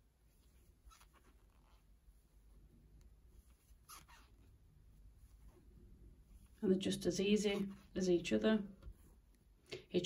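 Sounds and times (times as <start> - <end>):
yarn rustling with crochet hook: 0.0 - 9.6.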